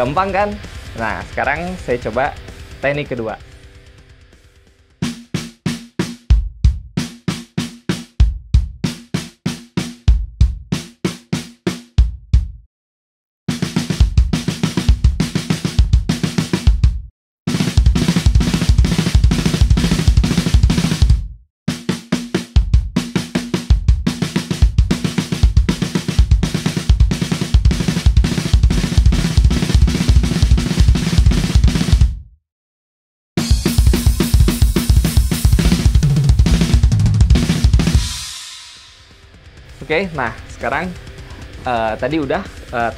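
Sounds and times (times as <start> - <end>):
bass drum strokes: 0.0 - 5.2, 33.6 - 42.9
drum kit fill: 0.0 - 12.6, 13.5 - 32.2, 33.4 - 42.9.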